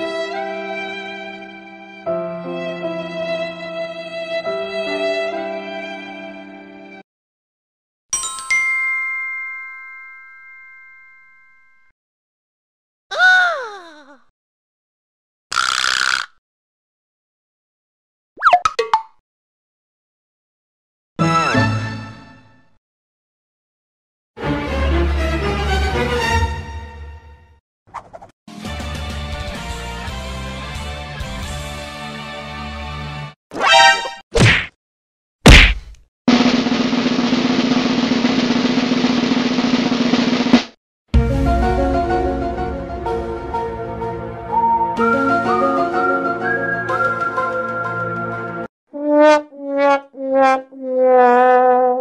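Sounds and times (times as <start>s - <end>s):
bell ding: 8.2s - 11.7s
sharp whack: 34.4s - 34.8s, 35.4s - 36.0s
music clip: 41.2s - 48.7s.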